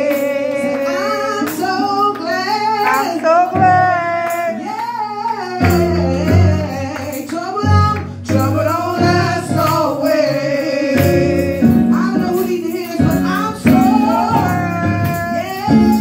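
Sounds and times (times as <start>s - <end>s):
instrumental accompaniment: 0.0s - 16.0s
woman singing gospel song: 0.0s - 16.0s.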